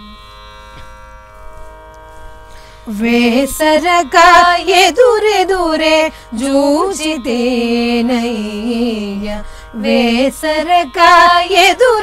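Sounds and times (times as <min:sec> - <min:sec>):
sustained drone: 0:02.4 - 0:12.0.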